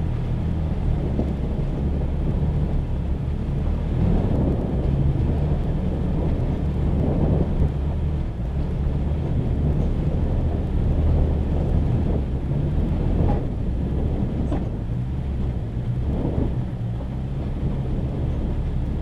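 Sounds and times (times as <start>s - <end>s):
pickup engine rumbling: 0.0s - 19.0s.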